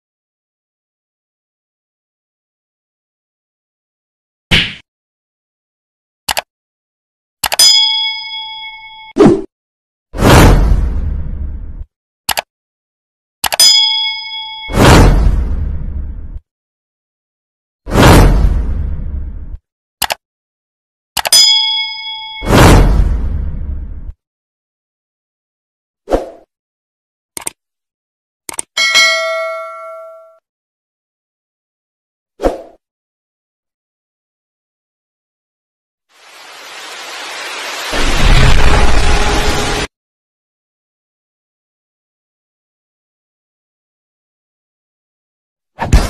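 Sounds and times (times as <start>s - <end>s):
quick clicks: 6.3s - 6.5s, 12.3s - 12.5s, 20.0s - 20.2s, 27.4s - 27.6s, 28.5s - 28.7s
bell ding: 7.6s - 9.2s, 13.6s - 14.8s, 21.3s - 22.5s, 28.8s - 30.4s.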